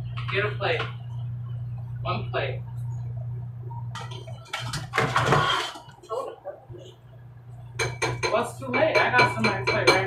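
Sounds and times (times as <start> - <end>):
steady low hum: 0.0 - 10.0
dishes and cutlery clinking: 4.0 - 6.1, 7.8 - 10.0.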